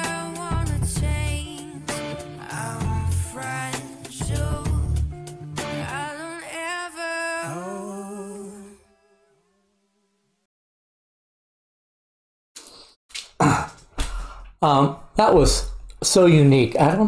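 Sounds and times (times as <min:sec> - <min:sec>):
sung hip-hop vocal: 0:00.0 - 0:05.0, 0:05.7 - 0:08.8.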